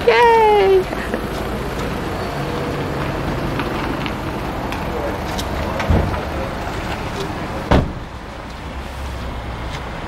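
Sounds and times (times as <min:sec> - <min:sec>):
traffic noise: 0:00.0 - 0:10.0
car door thump: 0:07.7 - 0:08.0.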